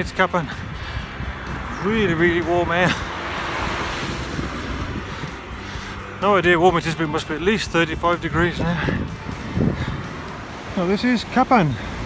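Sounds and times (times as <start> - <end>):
wind noise on microphone: 0.0 - 10.7.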